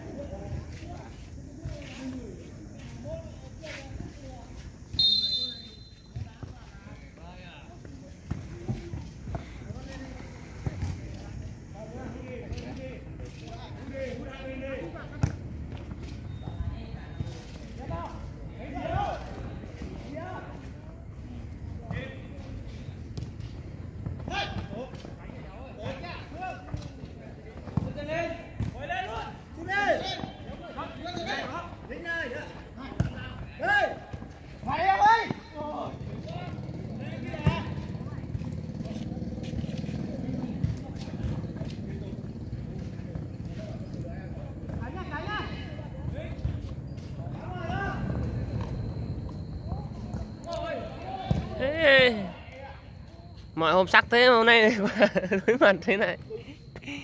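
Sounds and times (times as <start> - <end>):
ball being kicked: 51.2 - 51.6.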